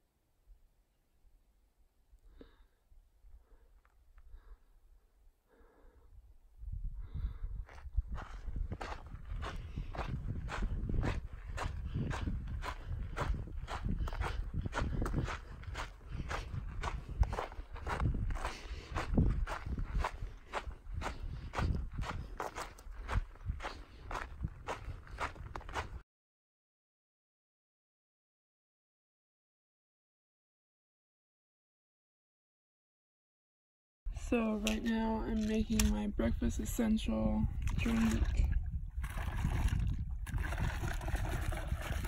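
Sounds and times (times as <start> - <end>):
footsteps on gravel trail: 7.6 - 26.0, 34.2 - 36.7.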